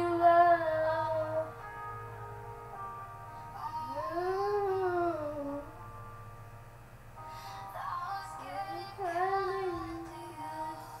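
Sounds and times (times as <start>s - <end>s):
steady low backing music: 0.0s - 11.0s
person singing: 3.6s - 5.8s, 7.6s - 11.0s.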